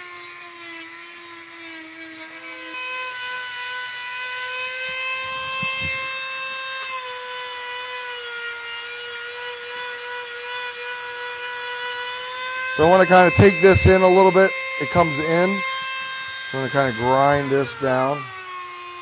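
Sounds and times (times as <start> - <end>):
rotary tool sanding whine: 0.0 - 19.0.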